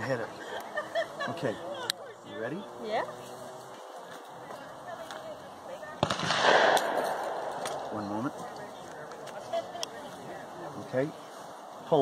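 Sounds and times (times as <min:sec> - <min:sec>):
shotgun shot: 0:06.0 - 0:07.9.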